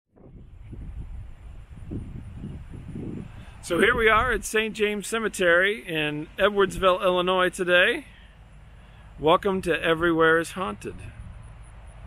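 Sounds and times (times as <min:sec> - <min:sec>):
wind buffeting microphone: 0:00.1 - 0:08.0, 0:09.4 - 0:12.0.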